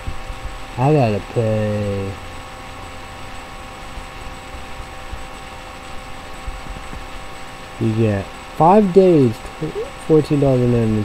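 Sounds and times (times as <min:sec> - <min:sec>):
background hum and hiss: 0:00.0 - 0:11.0
thin steady tones: 0:00.0 - 0:11.0.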